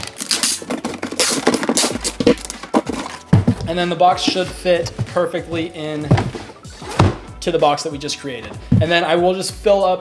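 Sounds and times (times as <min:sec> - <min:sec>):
packing tape tearing screech: 0:00.0 - 0:03.2
tape dispenser clicks and knocks: 0:00.0 - 0:03.2.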